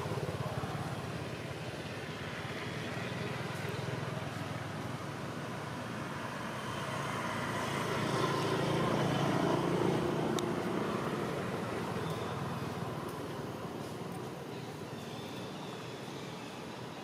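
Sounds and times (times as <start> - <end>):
vehicle engine passing by: 0.0 - 14.3.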